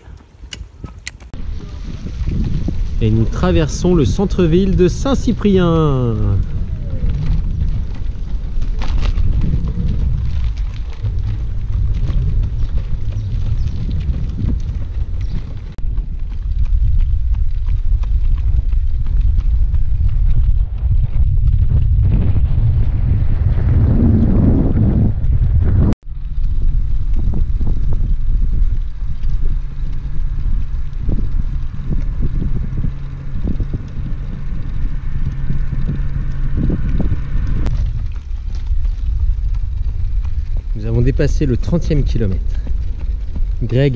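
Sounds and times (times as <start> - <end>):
wind buffeting microphone: 0.0 - 43.9.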